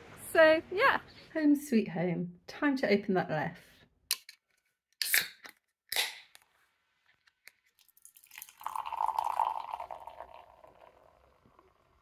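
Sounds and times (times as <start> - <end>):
beer pouring into glass: 7.8 - 12.0.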